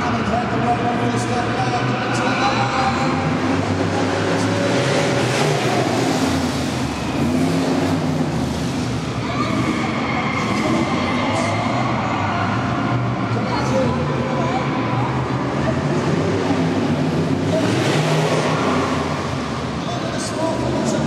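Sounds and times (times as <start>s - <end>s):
voices in background: 0.0s - 7.2s, 9.0s - 21.0s
car engine revving: 0.0s - 21.0s.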